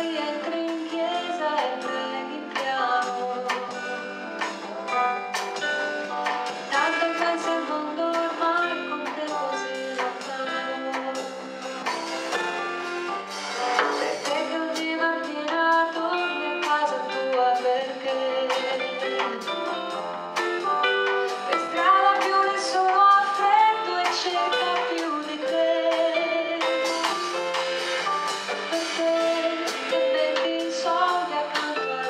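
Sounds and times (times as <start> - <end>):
woman singing into microphone: 0.0 - 4.2, 6.7 - 11.6, 14.0 - 19.2, 21.5 - 26.9, 28.7 - 32.0
drum and cymbal strokes: 0.0 - 32.0
small band playing: 0.0 - 32.0.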